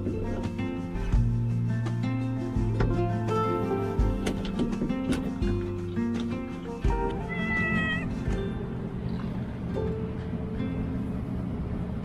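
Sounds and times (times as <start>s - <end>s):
background music: 0.0s - 11.3s
cat meowing: 7.1s - 8.2s.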